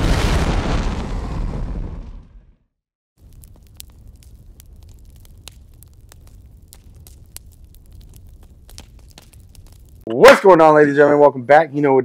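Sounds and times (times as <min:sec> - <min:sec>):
faint clicks and crackle: 0:03.2 - 0:10.1.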